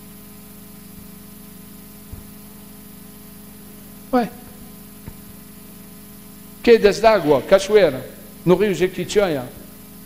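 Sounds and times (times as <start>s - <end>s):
electrical hum: 0.0s - 10.0s.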